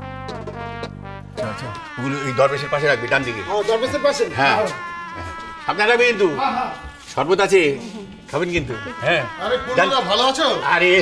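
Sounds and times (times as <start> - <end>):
person's wavering vocal sound: 1.4 - 7.2.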